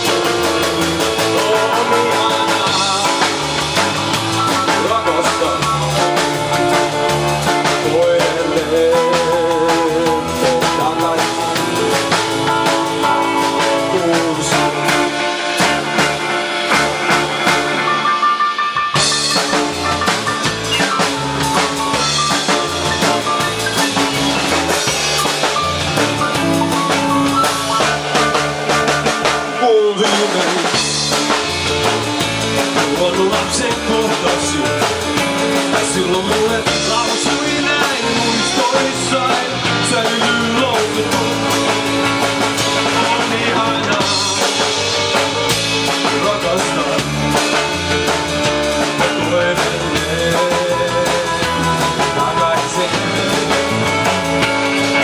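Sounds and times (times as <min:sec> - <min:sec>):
bass guitar: 0:00.0 - 0:55.0
drum kit: 0:00.0 - 0:55.0
electric guitar lead: 0:00.0 - 0:55.0.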